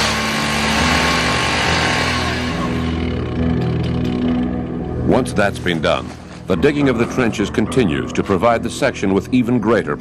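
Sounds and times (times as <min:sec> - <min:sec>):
chainsaw cutting brush: 0:00.0 - 0:03.3
chainsaw engine running: 0:00.0 - 0:04.5.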